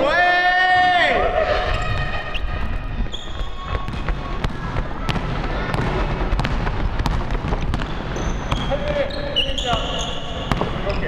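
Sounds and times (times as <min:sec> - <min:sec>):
players' voices: 0:00.0 - 0:11.0
sneaker squeaks: 0:01.7 - 0:11.0
basketball bouncing on hardwood floor: 0:03.6 - 0:09.0, 0:09.7 - 0:11.0.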